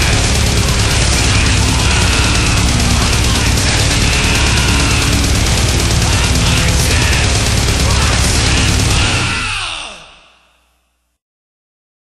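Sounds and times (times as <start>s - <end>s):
extreme metal band: 0.0s - 10.6s.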